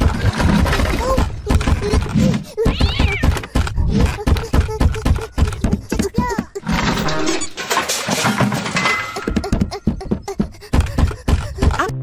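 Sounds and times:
cartoon footsteps pattering: 0:00.0 - 0:06.7, 0:09.2 - 0:12.0.

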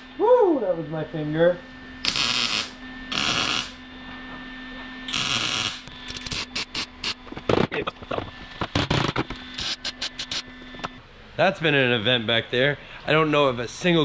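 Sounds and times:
welding arc crackling: 0:02.0 - 0:03.8, 0:05.1 - 0:07.2, 0:09.6 - 0:10.5.

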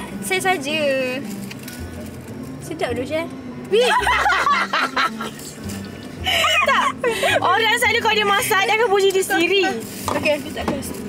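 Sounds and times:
background music: 0:00.0 - 0:11.0
woman laughing: 0:03.8 - 0:05.4, 0:06.2 - 0:07.6.

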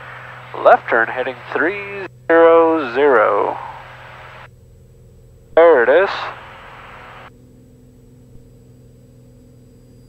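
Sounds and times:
aircraft engine and propeller drone: 0:00.0 - 0:10.0
low hum: 0:00.0 - 0:10.0
person speaking: 0:00.4 - 0:03.8, 0:05.6 - 0:06.8.

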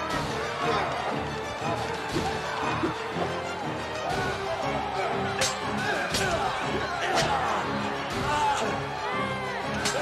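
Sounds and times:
dramatic film score music: 0:00.0 - 0:10.0.

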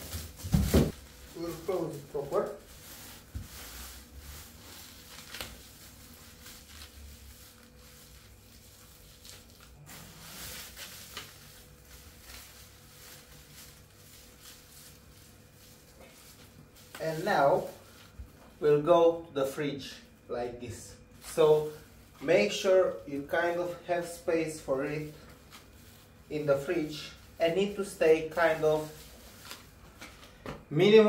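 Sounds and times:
plastic cling film crinkling: 0:00.0 - 0:18.7, 0:21.1 - 0:31.0.

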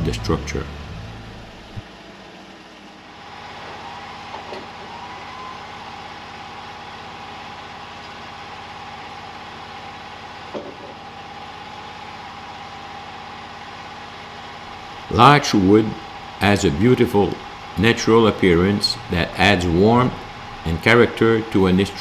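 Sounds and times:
sawmill engine idling: 0:00.0 - 0:22.0.

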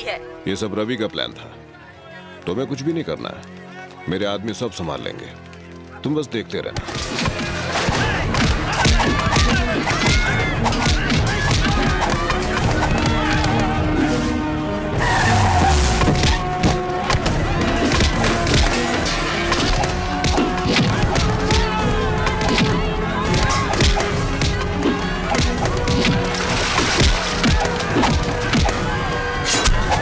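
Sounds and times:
action film score: 0:00.0 - 0:30.0
background music: 0:00.0 - 0:30.0
car tyres skidding: 0:15.0 - 0:16.4
wood cracking and splintering: 0:15.6 - 0:30.0.

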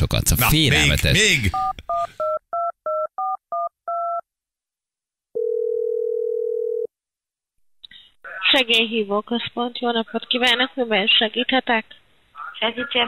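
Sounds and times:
long ringback tone: 0:05.4 - 0:06.9.

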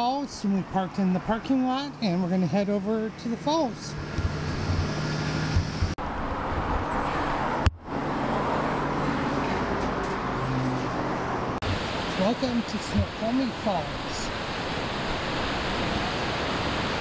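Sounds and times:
passing car traffic: 0:00.0 - 0:17.0.

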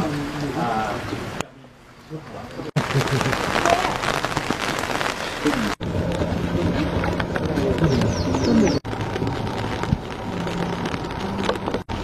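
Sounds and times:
rain striking umbrellas: 0:00.0 - 0:01.5, 0:02.1 - 0:12.0.

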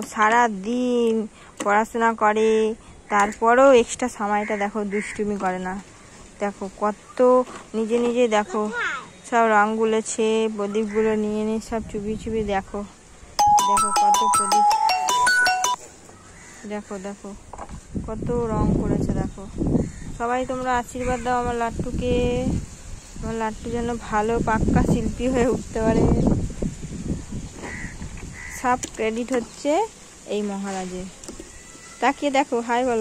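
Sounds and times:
electronic ringtone melody: 0:13.4 - 0:15.8
person speaking: 0:13.4 - 0:15.8.

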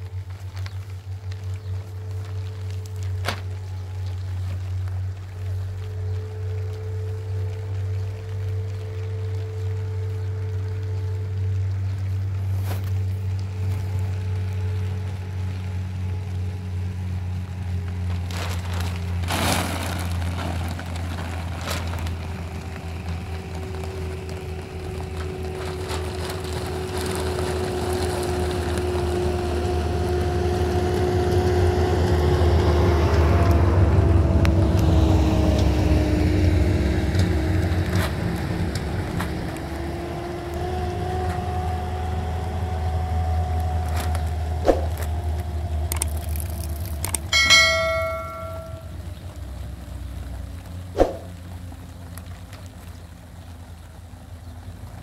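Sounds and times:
distant engine humming: 0:20.0 - 0:52.1
bell-like chime: 0:47.3 - 0:48.9.

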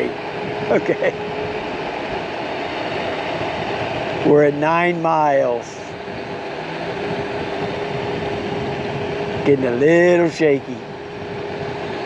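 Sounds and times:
electric motor whine: 0:00.0 - 0:12.0
tyres on asphalt: 0:00.0 - 0:12.0
wind noise: 0:00.0 - 0:12.0.

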